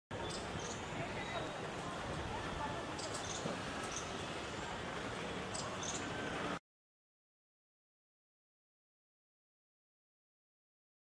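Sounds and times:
faint distant voices: 0.1s - 6.6s.

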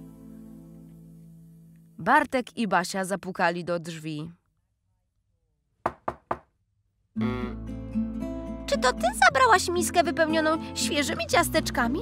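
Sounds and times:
knocks on a wooden door: 5.8s - 6.5s.

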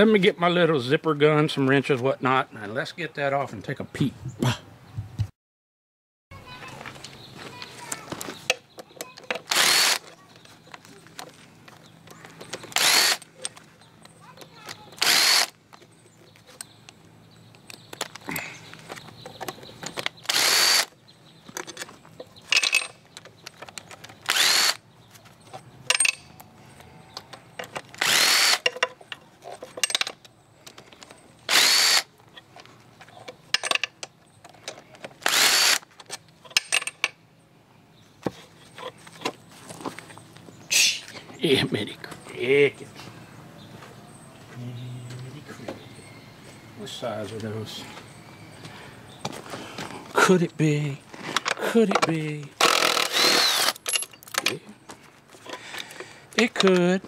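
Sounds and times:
power ratchet bursts: 9.4s - 10.0s, 12.7s - 13.3s, 15.0s - 15.6s, 20.2s - 20.9s, 24.2s - 24.8s, 28.0s - 28.7s, 31.5s - 32.1s, 35.2s - 35.9s, 52.6s - 54.0s.

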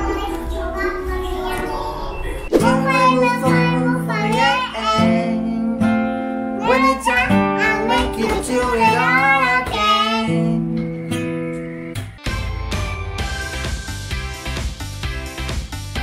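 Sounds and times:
girl singing: 0.0s - 5.9s, 6.6s - 10.8s
acoustic guitar chords: 2.6s - 16.0s.

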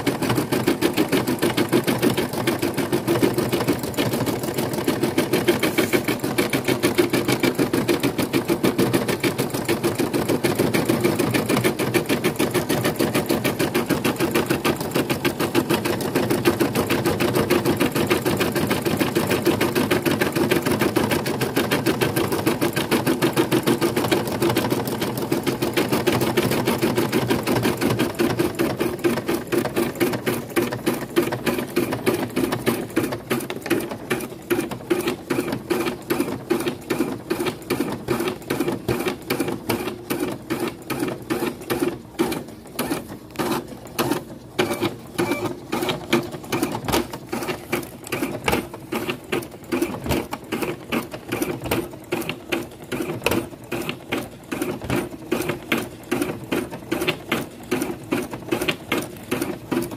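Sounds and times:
embroidery machine stitching: 0.0s - 59.9s.

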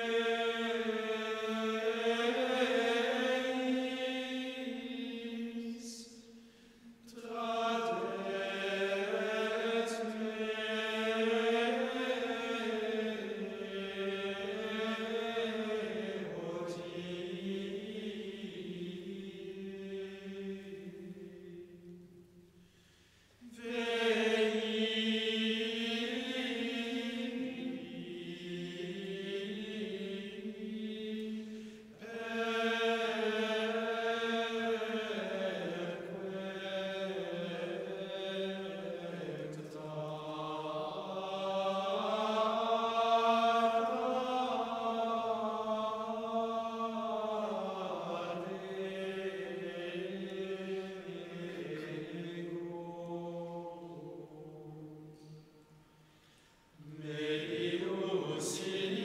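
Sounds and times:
men's choir chanting in unison: 0.0s - 6.4s, 7.1s - 21.7s, 23.4s - 55.5s, 56.8s - 59.0s.

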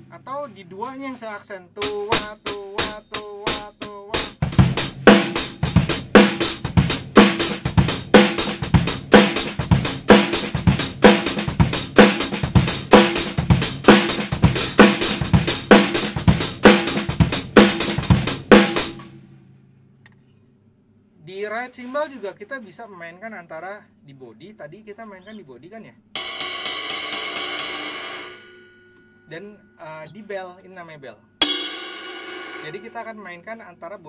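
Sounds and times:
drum kit playing a beat: 0.0s - 1.2s, 1.8s - 19.1s, 26.2s - 28.5s, 31.4s - 33.2s.

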